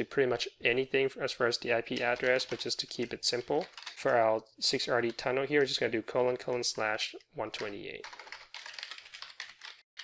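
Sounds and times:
computer keyboard typing: 0:01.9 - 0:04.2, 0:07.5 - 0:09.9.

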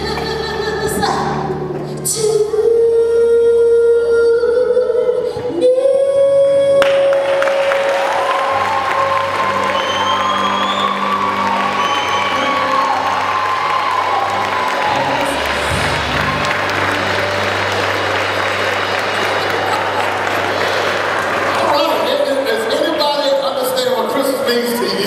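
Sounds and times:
audience applause and cheering: 0:06.8 - 0:24.0
band playing sustained chords: 0:06.8 - 0:25.0.

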